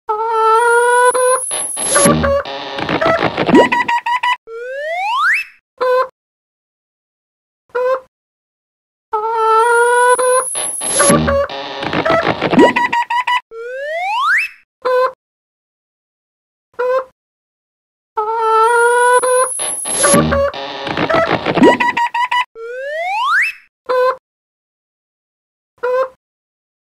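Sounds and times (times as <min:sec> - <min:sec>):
cartoon sound effects: 0:00.4 - 0:05.6, 0:09.4 - 0:14.6, 0:18.5 - 0:23.6
short pitched tones: 0:01.0 - 0:03.9, 0:10.1 - 0:13.0, 0:19.1 - 0:22.1.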